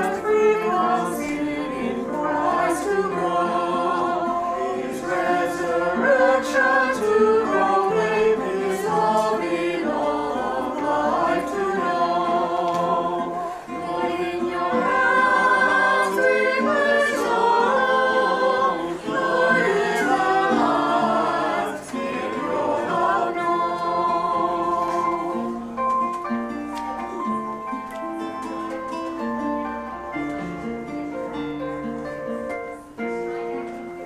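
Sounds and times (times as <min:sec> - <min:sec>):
choir singing in harmony: 0:00.0 - 0:25.9.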